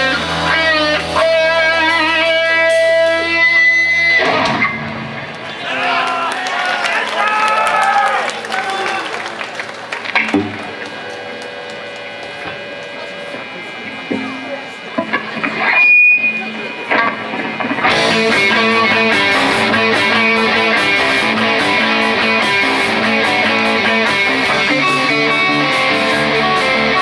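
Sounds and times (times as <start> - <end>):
held electric guitar notes: 0.0 - 5.4, 9.9 - 27.0
rock band playing: 0.0 - 5.5, 9.4 - 12.9, 13.8 - 27.0.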